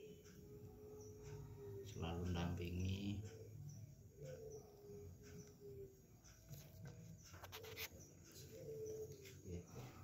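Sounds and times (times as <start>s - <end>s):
faint low cooing calls: 0.0s - 10.0s.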